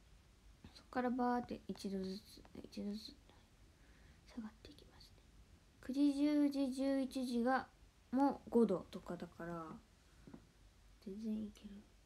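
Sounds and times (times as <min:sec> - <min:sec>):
woman speaking: 0:00.7 - 0:03.4, 0:05.8 - 0:09.9, 0:11.0 - 0:11.9.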